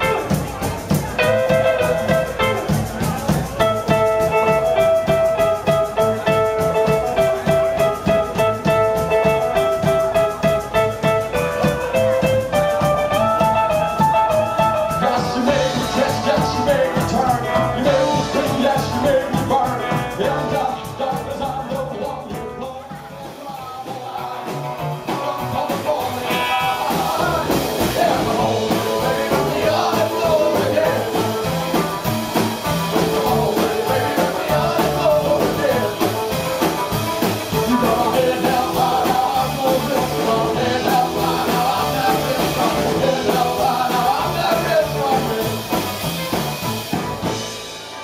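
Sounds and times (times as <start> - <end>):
man singing: 0.0 - 46.1
rockabilly band playing: 0.0 - 48.0.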